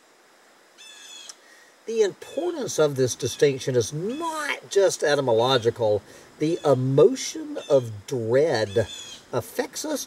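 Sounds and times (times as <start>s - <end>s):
bird call: 7.4s - 8.0s, 8.6s - 9.4s.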